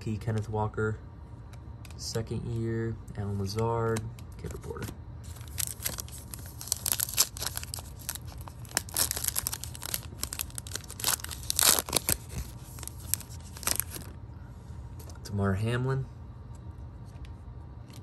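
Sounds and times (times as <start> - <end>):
foil wrapper tearing and crinkling: 5.3 - 14.1.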